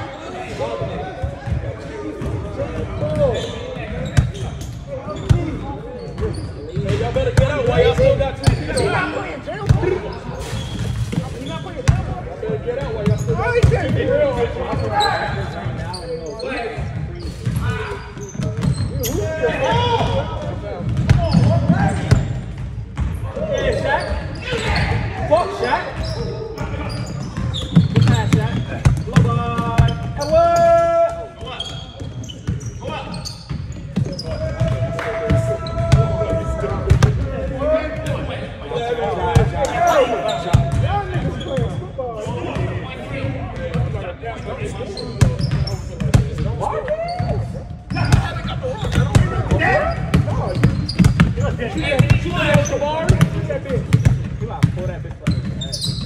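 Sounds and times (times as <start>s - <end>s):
players shouting and chattering: 0.0s - 56.0s
basketballs bouncing on hardwood: 18.4s - 18.9s, 19.7s - 23.2s, 27.2s - 30.4s, 45.2s - 56.0s.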